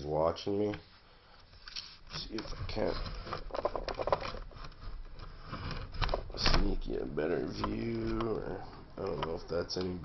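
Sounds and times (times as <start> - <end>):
phone handling clicks and rattles: 3.2 - 5.3.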